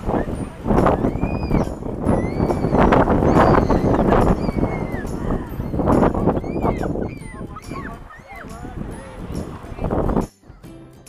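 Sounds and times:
small waves washing onto beach: 0.0s - 10.3s.

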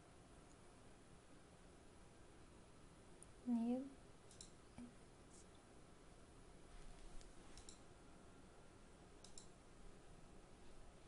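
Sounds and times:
computer mouse clicks: 4.3s - 4.9s, 7.2s - 7.8s, 9.2s - 9.6s.

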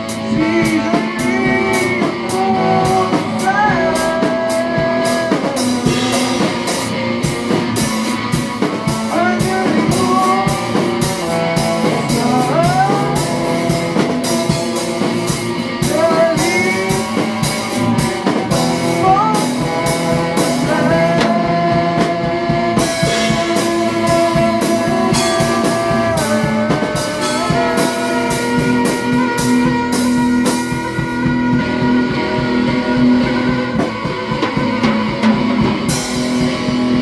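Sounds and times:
rock band jamming: 0.0s - 37.0s
sliding bending lead melody: 0.0s - 37.0s.

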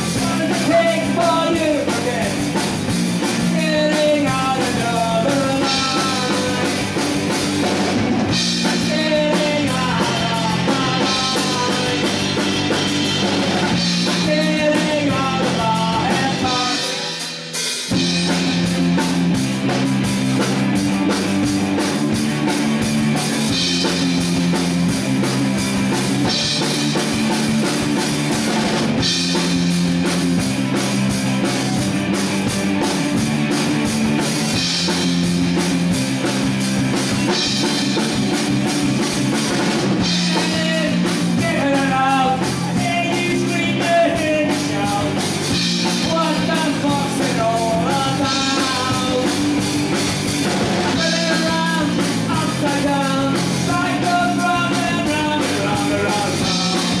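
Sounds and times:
man singing: 0.0s - 2.6s, 3.3s - 7.1s, 8.6s - 12.9s, 13.8s - 17.3s, 40.0s - 49.6s, 50.9s - 57.0s
live rock band playing: 0.0s - 57.0s.

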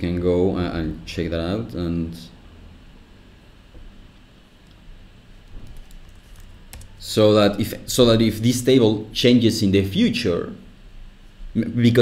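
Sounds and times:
computer keyboard keystrokes: 5.5s - 6.9s.

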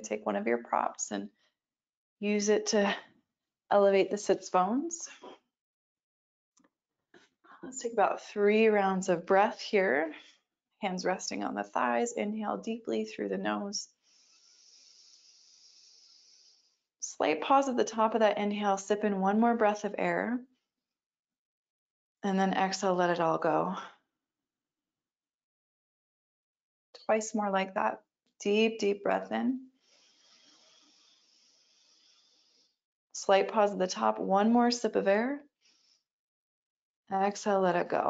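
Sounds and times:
deep inhale through nose: 13.9s - 16.9s, 29.7s - 32.8s, 35.6s - 36.1s.

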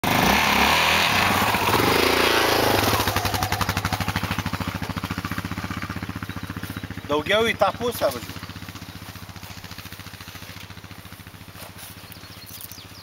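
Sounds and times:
quad engine revving and idling: 0.0s - 13.0s.

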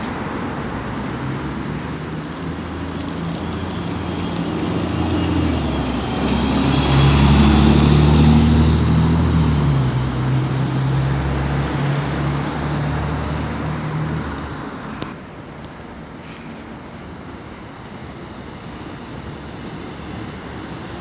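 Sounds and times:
bus engine hum passing: 0.0s - 21.0s.

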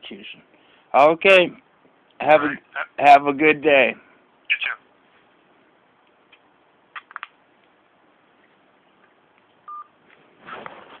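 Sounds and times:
telephone beep over phone line: 9.7s - 9.9s
brief scuffle of noise: 10.4s - 11.0s.

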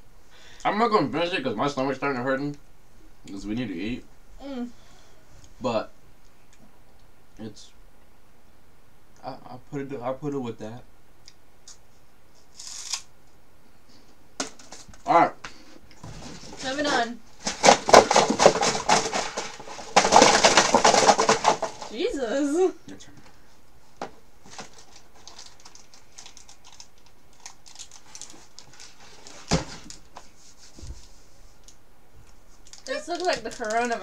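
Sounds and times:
cardboard box rustling: 16.0s - 22.1s.

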